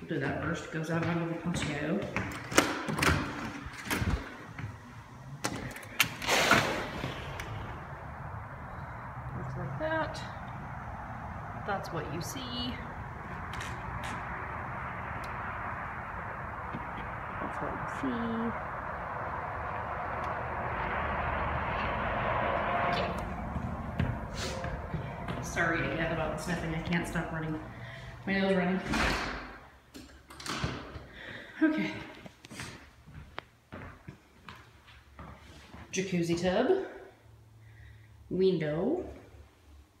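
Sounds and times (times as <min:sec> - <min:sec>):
faint low rumbles: 0:03.2 - 0:29.9
road traffic hiss: 0:04.3 - 0:28.3.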